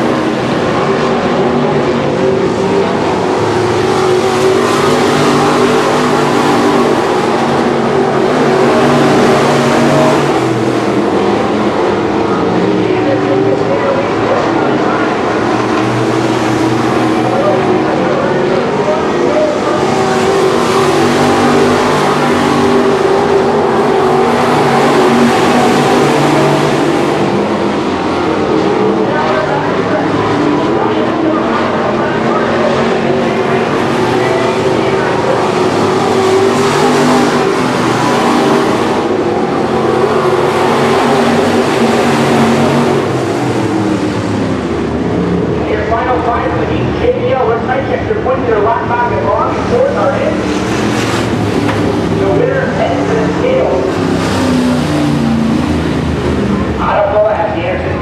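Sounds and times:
race car engines passing: 0.0s - 58.0s.

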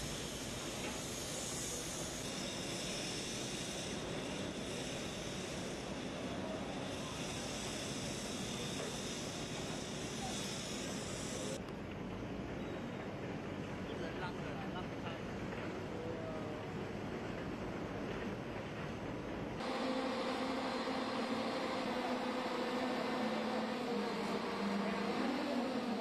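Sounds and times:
high hiss: 0.0s - 11.6s, 19.6s - 26.0s
excavators running: 0.0s - 26.0s.

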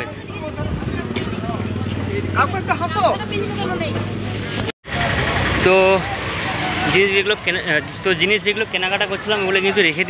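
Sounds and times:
street noise with vehicles: 0.0s - 10.0s.

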